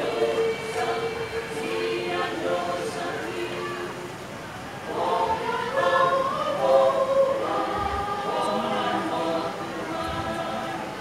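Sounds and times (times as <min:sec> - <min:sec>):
choir singing long notes: 0:00.0 - 0:11.0.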